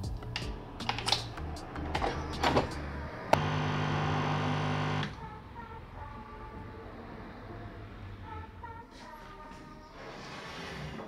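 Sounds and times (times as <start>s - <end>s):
coffee machine pump humming: 3.4s - 5.1s.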